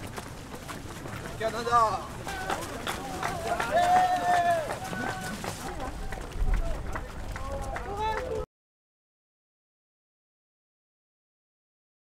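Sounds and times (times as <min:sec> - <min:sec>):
runners calling out: 0:00.0 - 0:08.5
runners' footsteps on road: 0:00.0 - 0:08.5.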